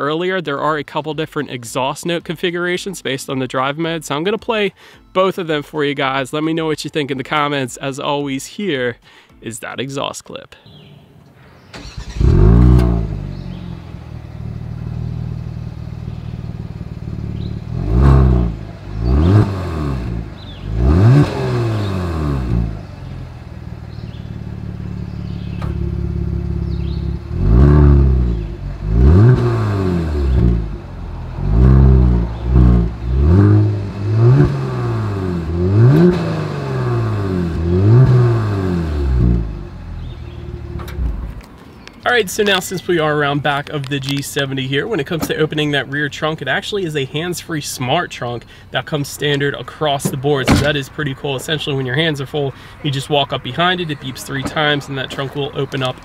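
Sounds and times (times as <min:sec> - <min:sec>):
quick throttle blips: 0:11.7 - 0:15.0, 0:24.9 - 0:41.4
car engine revving and idling: 0:11.8 - 0:41.6, 0:48.8 - 0:56.0.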